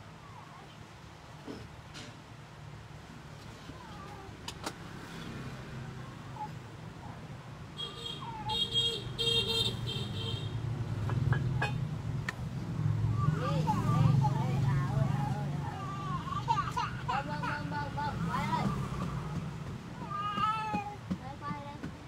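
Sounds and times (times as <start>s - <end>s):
vehicle engine passing: 4.8s - 6.7s, 10.7s - 16.4s, 17.1s - 20.0s.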